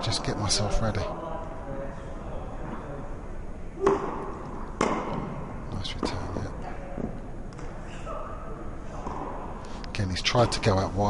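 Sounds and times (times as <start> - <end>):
tennis ball strikes: 3.8 - 5.4.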